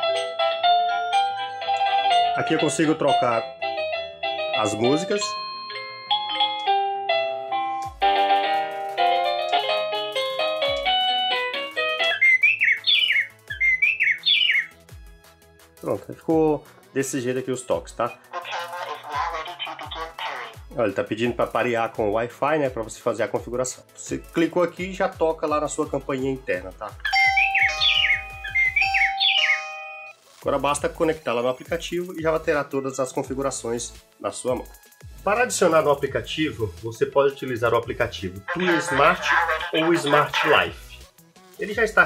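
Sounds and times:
doorbell chime melodies: 0.0s - 9.9s, 27.1s - 30.2s
chirping birdsong ringtone: 11.8s - 14.8s, 27.0s - 30.2s.

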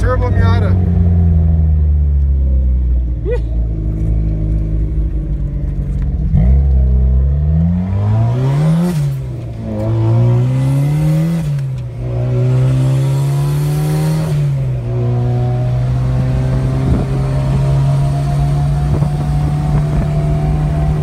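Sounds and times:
car engine accelerating through gears: 0.3s - 21.0s.

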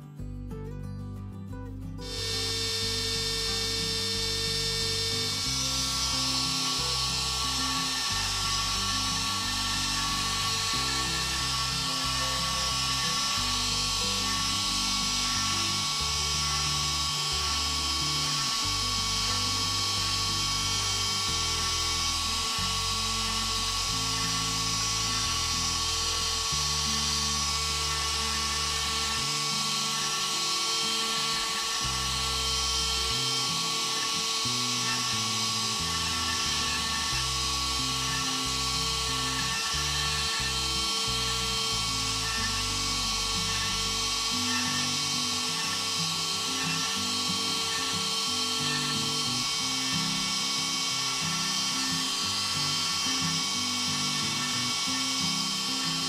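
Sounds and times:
background music with bass: 0.0s - 56.0s
router spindle high-pitched whine: 2.0s - 56.0s.

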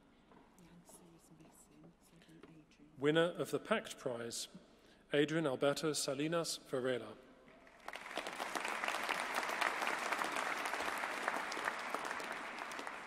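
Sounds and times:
audience applauding: 7.6s - 13.0s.

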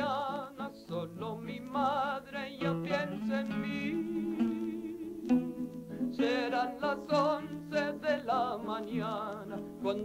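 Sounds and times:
acoustic guitar accompaniment: 0.0s - 10.0s.

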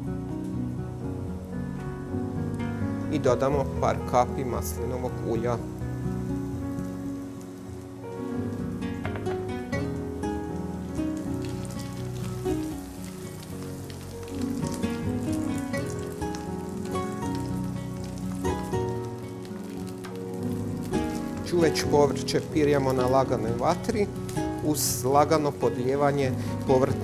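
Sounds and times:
background music: 0.0s - 27.0s
vegetables sizzling in a pan: 4.6s - 27.0s.

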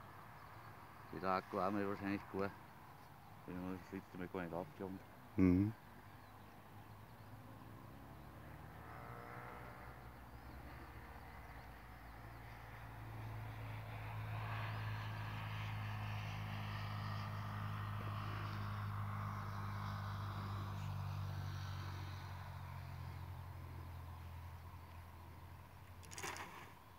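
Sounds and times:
distant engine droning: 0.0s - 26.9s.

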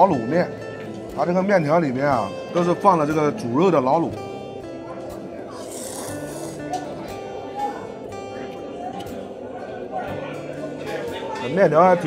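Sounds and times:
plucked guitar music: 0.0s - 12.0s
person slurping noodles: 5.6s - 6.7s.

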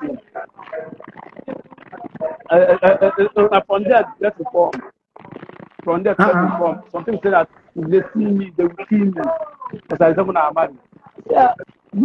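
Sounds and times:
man talking over video call: 5.9s - 11.6s.

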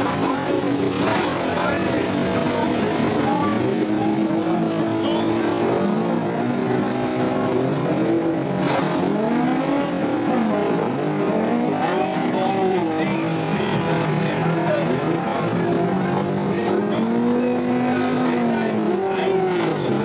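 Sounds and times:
race car engines revving: 0.0s - 20.0s.

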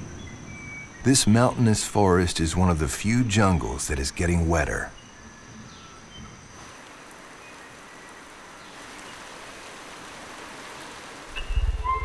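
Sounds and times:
rain on foliage: 6.5s - 12.0s.

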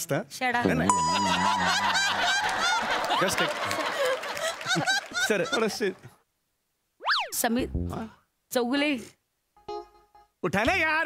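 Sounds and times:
comic pitch sweep effect: 0.7s - 2.1s
audience laughing: 1.0s - 6.1s.

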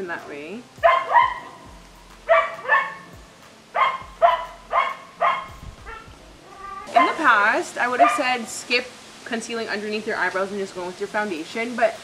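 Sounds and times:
dog barking: 0.8s - 1.5s, 2.3s - 3.0s, 3.8s - 6.1s, 6.8s - 7.2s, 8.0s - 8.3s.

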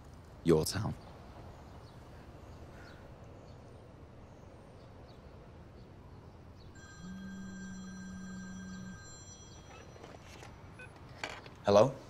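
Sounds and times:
faint high steady tones: 6.4s - 11.2s
phone vibrating buzz: 6.8s - 10.4s.

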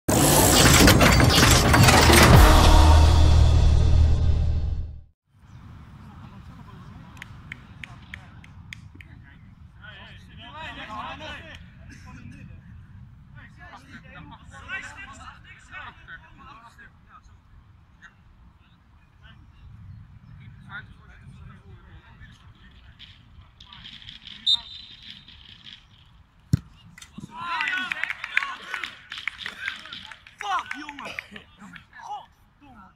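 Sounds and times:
loud rushing noise: 0.1s - 5.1s
low rumble: 1.0s - 5.1s
referee's whistle blast: 24.5s - 25.0s
football kick thump: 26.5s - 26.8s.

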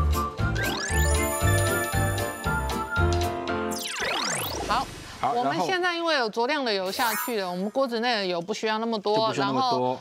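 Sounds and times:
upbeat title jingle with bass beat: 0.4s - 4.7s
bell-like chiming tones: 0.6s - 4.6s.

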